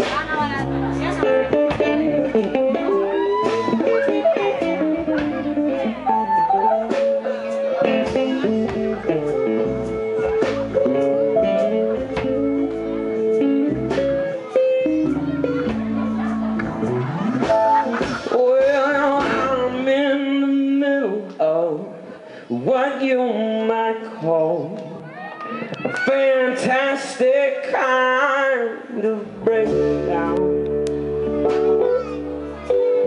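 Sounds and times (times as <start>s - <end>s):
acoustic guitars picking: 0.0s - 21.3s, 26.1s - 33.0s
keyboard: 0.0s - 23.0s, 25.5s - 33.0s
bass guitar: 0.0s - 33.0s.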